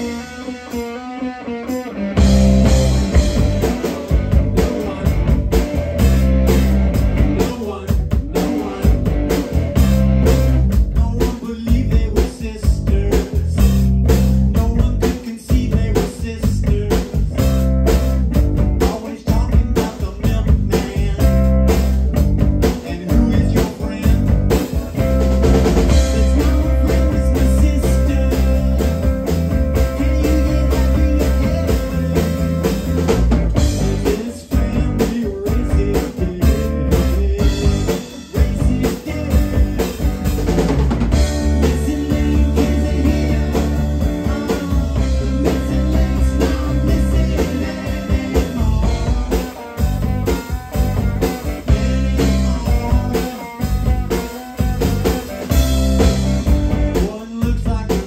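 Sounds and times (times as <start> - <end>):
drum kit: 0.0 - 58.0
electric bass: 0.0 - 58.0
electric guitar: 0.0 - 58.0.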